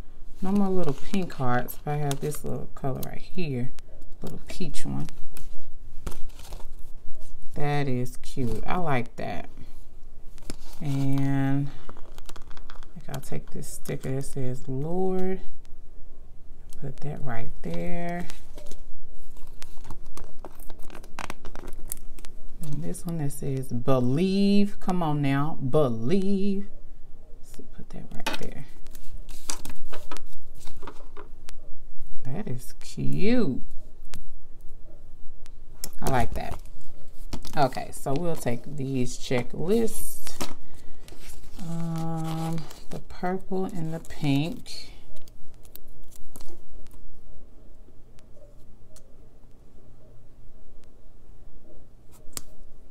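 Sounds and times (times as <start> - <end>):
sticker sheet crinkling: 0.4 - 3.2, 10.4 - 14.2, 17.6 - 23.0, 28.4 - 31.2, 35.8 - 47.0.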